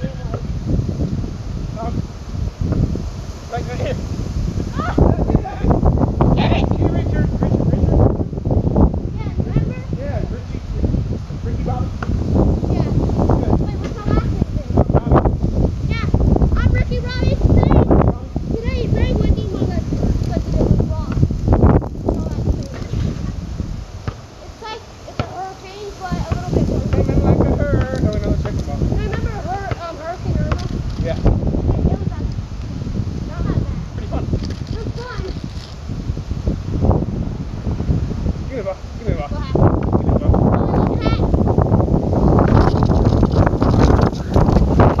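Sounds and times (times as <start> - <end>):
wind rumble on microphone: 0.0 - 45.0.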